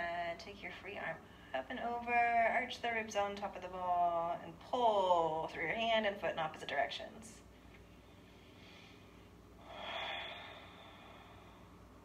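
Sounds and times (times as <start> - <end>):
woman breathing out: 8.3 - 11.9.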